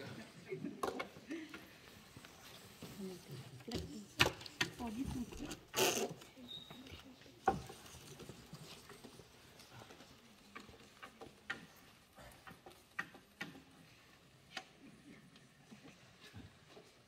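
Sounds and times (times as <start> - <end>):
faint clicks and taps: 6.9 - 14.8.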